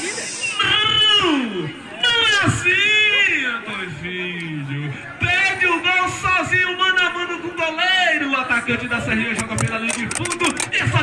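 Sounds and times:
man speaking: 8.6 - 11.0.

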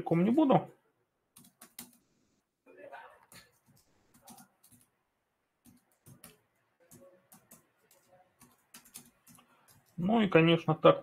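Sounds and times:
typing on computer keyboard: 1.3 - 2.0, 3.3 - 5.0, 5.6 - 10.0.

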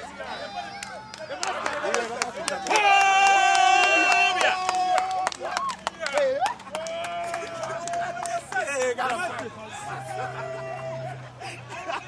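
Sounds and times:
men calling out: 0.0 - 11.8.

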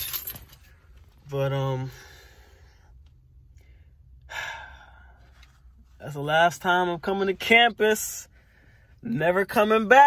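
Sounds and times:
man sighing heavily: 4.2 - 5.2
faint breath: 8.3 - 9.0.

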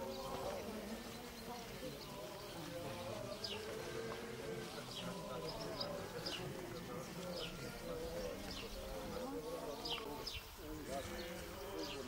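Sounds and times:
crowd chanting long notes: 0.0 - 12.0.

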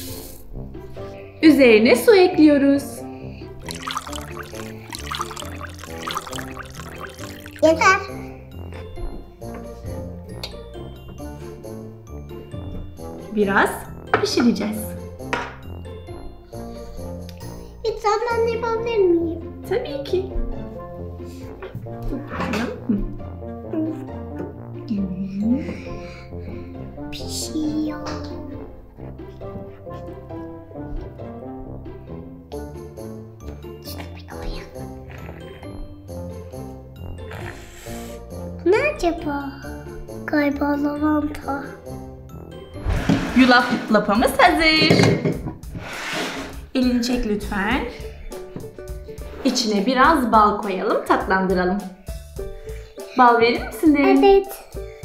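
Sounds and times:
background music: 0.0 - 55.0
water pouring onto oats: 3.6 - 7.6.

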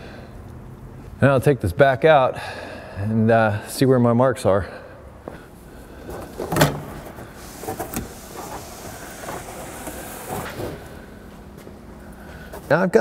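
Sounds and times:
headliner rustling and scraping: 6.0 - 11.2.

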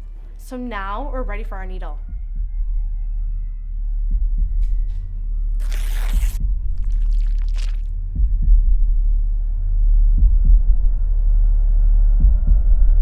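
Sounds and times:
heartbeat thumps: 1.9 - 3.1, 4.0 - 13.0.

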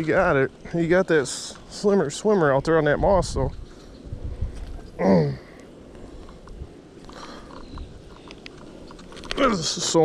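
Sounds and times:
low steady background rumble: 0.0 - 10.0.

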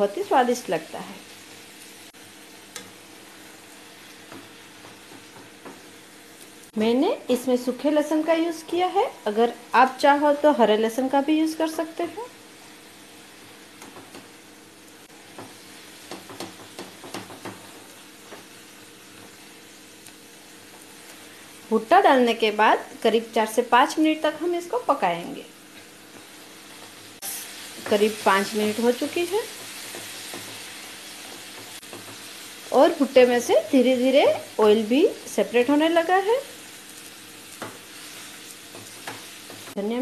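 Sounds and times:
food sizzling in a wok: 0.0 - 40.0
spatula stirring in pan: 15.1 - 21.7, 25.7 - 32.7, 36.6 - 39.8.

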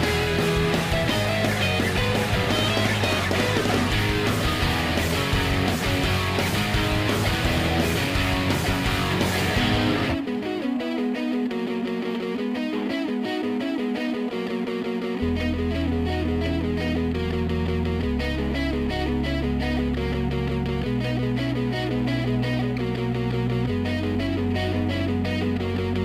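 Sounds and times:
bass and drums: 0.0 - 10.3
electric guitar: 0.0 - 26.0.

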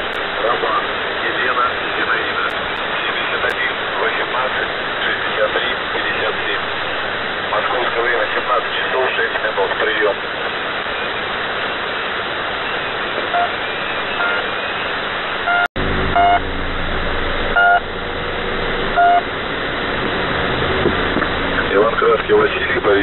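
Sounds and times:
shortwave radio static: 0.0 - 23.0
short radio beeps: 13.3 - 14.8, 15.4 - 16.4, 17.6 - 17.8, 19.0 - 19.3.

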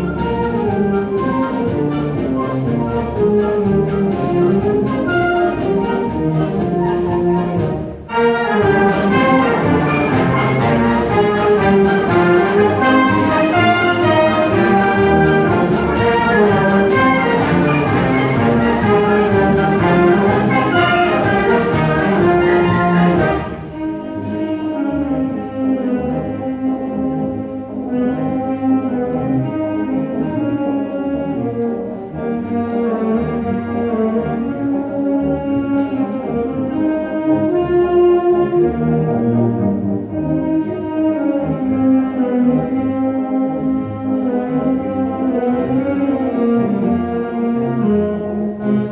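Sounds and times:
concert band playing: 0.0 - 48.9.

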